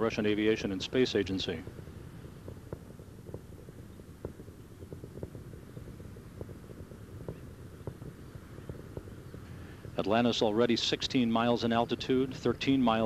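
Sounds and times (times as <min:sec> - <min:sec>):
distant rocket rumble: 0:00.0 - 0:13.0
sharp crackles: 0:00.0 - 0:13.0.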